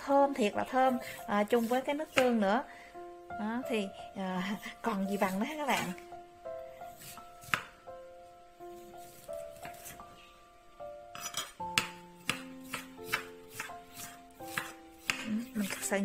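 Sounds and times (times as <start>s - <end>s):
soft background music: 0.0s - 16.0s
knife chopping on stone board: 0.9s - 2.4s, 7.0s - 7.8s, 9.0s - 10.0s, 11.2s - 16.0s.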